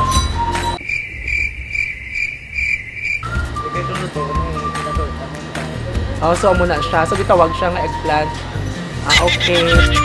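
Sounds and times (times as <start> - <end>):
crickets chirping: 0.8 - 3.8
background music: 3.2 - 10.0.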